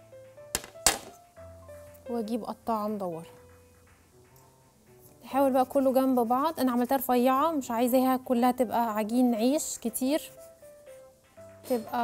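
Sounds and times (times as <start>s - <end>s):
soft background music: 0.0s - 12.0s
metal tray knocking on countertop: 0.6s - 1.2s.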